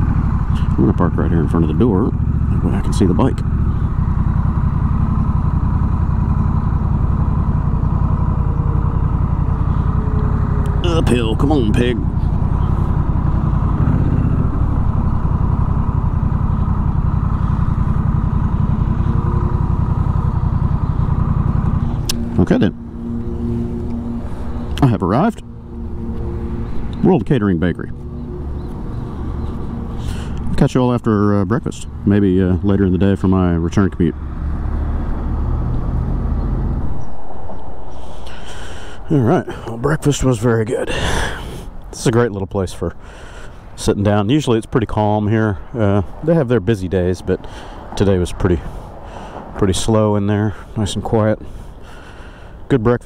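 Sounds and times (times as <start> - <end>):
background rumble: 0.0 - 50.9
motorcycle engine idling: 0.0 - 52.7.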